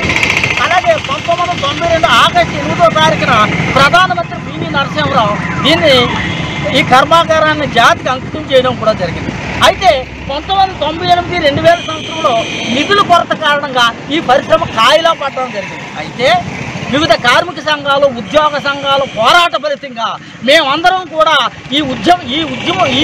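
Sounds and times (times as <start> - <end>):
man speaking loudly: 0.5 - 23.0.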